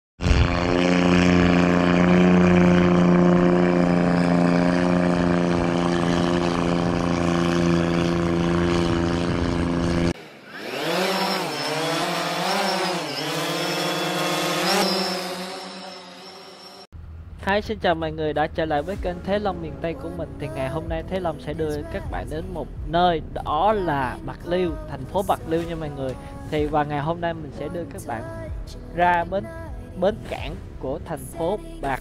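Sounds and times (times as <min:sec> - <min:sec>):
engine running steadily: 0:00.2 - 0:15.5, 0:17.0 - 0:32.0
whine sweeping up and down: 0:00.2 - 0:28.4.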